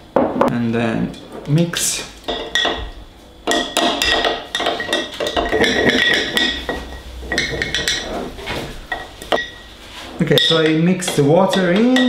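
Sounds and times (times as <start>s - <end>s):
glass jar ringing: 2.3s - 8.2s, 8.9s - 12.0s
spoon clinking in glass jar: 3.5s - 8.1s.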